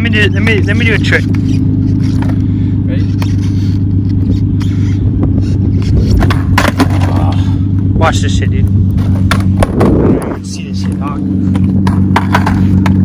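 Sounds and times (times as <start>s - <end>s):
car engine idling: 0.0s - 13.0s
skateboard clacking on asphalt: 6.0s - 7.2s, 10.8s - 13.0s.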